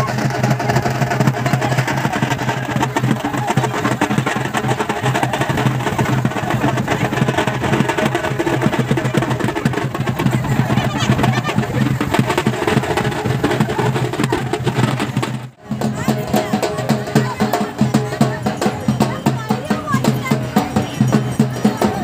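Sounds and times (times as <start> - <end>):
music with fast dense drumming: 0.0 - 22.0.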